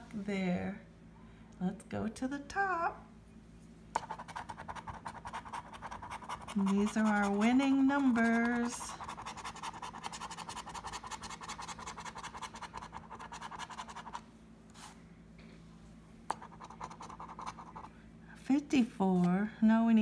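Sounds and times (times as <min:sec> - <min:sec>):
coin scratching lottery ticket: 0:04.0 - 0:14.2, 0:16.3 - 0:17.9
person speaking: 0:06.5 - 0:09.0.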